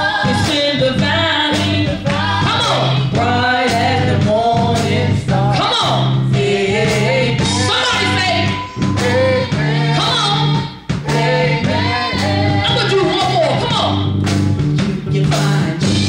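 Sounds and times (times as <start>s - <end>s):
woman singing gospel song: 0.0s - 13.2s, 14.8s - 16.0s
instrumental accompaniment with bass: 0.0s - 16.0s.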